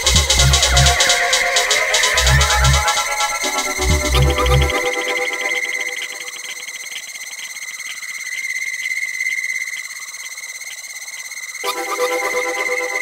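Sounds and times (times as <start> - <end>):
fast ticking: 0.0 - 4.8
high synth tone: 0.0 - 7.0.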